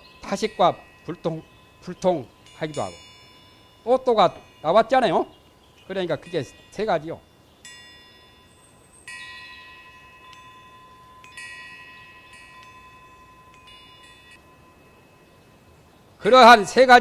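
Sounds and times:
small metal chimes ringing: 0.0s - 17.0s.

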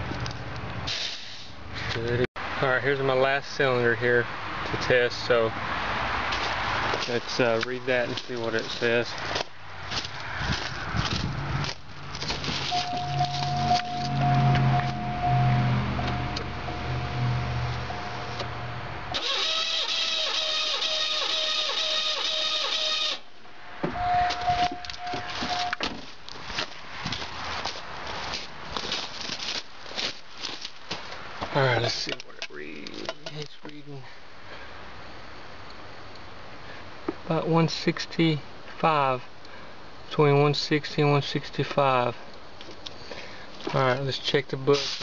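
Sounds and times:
handling and scuffing noises: 6.3s - 15.0s, 24.3s - 32.2s, 44.7s - 45.0s
engine cranking on starter: 19.1s - 23.2s.

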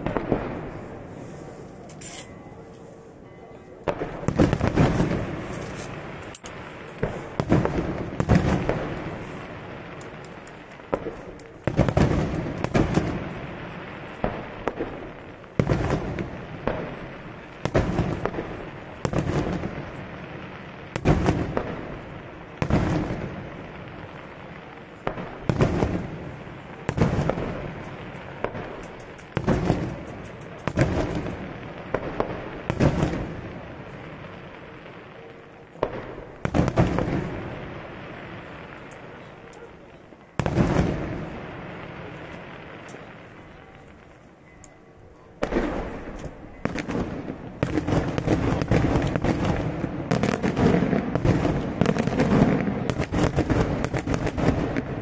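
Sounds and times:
fireworks shells bursting: 1.2s - 2.9s, 27.2s - 32.0s.

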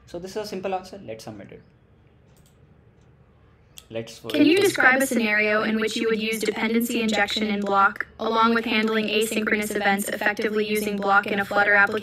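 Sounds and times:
computer mouse clicks: 2.3s - 3.2s, 7.2s - 7.8s.

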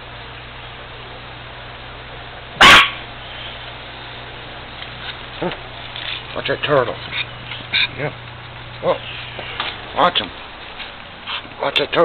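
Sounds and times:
chihuahua barking: 2.6s - 3.1s.

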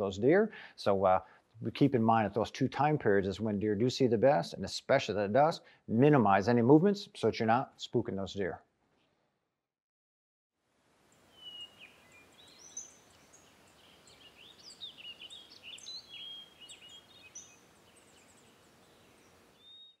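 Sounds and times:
faint field ambience hiss: 0.0s - 8.6s, 10.6s - 20.0s
songbirds chirping and whistling: 11.3s - 20.0s.

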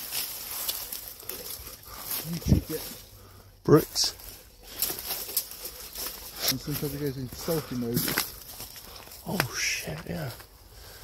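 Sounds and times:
footsteps on dry leaves and twigs: 0.0s - 11.0s.

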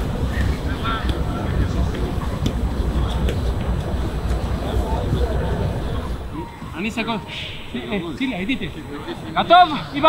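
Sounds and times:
steady low rumble: 0.0s - 9.4s
indistinct voices: 0.0s - 10.0s.

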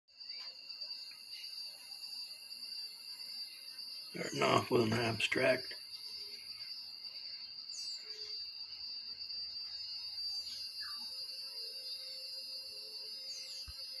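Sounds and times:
high-pitched insect drone: 0.1s - 14.0s.

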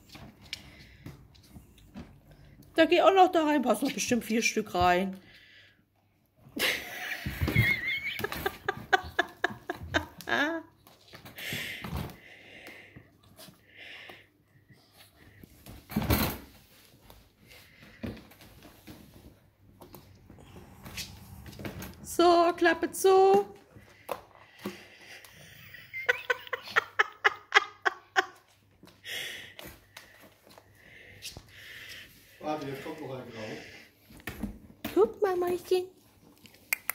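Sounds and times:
person laughing: 6.6s - 10.7s, 25.4s - 28.4s.

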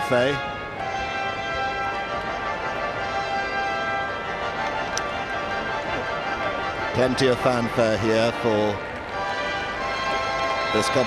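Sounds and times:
fanfare playing held chords: 0.0s - 11.0s.

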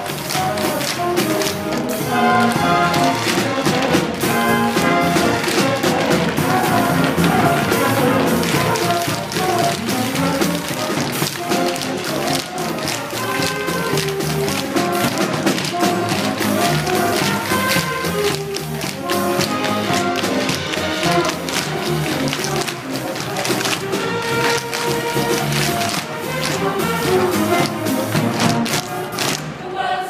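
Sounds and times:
tap shoes clattering on stage: 0.0s - 29.5s
pit band with brass: 0.0s - 30.0s.

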